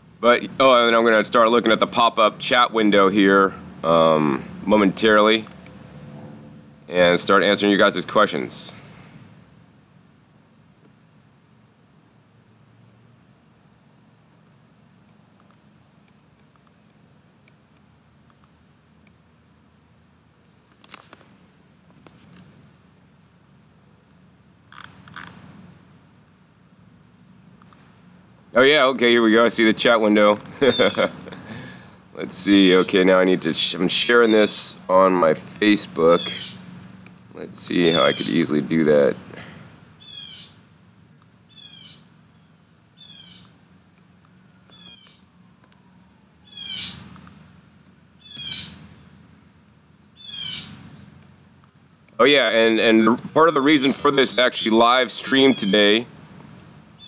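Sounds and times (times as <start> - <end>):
faint low hum: 0.0 - 57.0
quiet computer clicks: 14.4 - 19.2, 27.6 - 28.5, 47.1 - 48.5
animal high-pitched calls: 30.6 - 31.3, 36.2 - 36.6, 37.8 - 38.5, 40.0 - 40.6, 41.5 - 42.1, 43.0 - 43.4, 44.7 - 45.2, 45.8 - 47.0, 48.2 - 48.8, 50.2 - 50.7.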